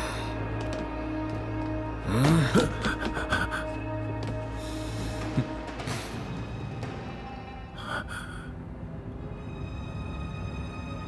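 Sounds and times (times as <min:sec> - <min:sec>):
tense drama music: 0:00.0 - 0:11.0
person gasping: 0:02.1 - 0:05.6, 0:07.8 - 0:08.6.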